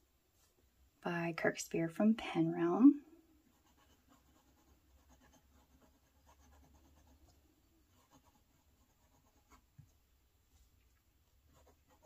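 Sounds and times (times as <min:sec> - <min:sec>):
pen nib scratching on paper: 0:03.5 - 0:09.7, 0:11.5 - 0:12.0.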